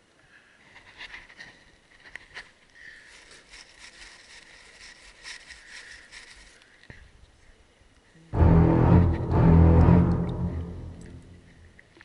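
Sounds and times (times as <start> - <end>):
low hiss: 0.0 - 12.0
light irregular patter: 0.1 - 8.2.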